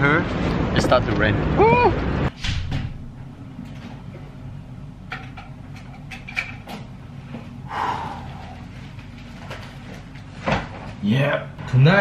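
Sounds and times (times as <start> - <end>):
low room hum: 2.8 - 12.0.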